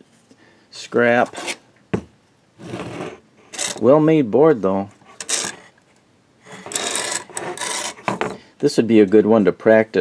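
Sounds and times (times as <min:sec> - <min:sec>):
circuit board scraping on workbench: 0:01.2 - 0:01.6, 0:02.6 - 0:03.9, 0:05.0 - 0:05.8, 0:06.4 - 0:08.4.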